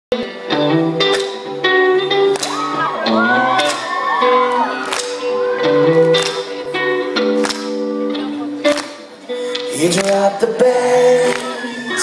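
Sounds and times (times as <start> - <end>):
live band playing: 0.1 - 12.0
audience screaming: 2.4 - 6.5, 11.2 - 12.0.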